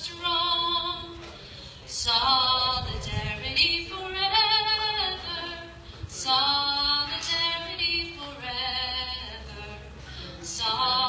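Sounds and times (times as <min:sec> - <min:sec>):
woman singing unaccompanied: 0:00.0 - 0:01.2, 0:01.9 - 0:09.9, 0:10.5 - 0:11.0.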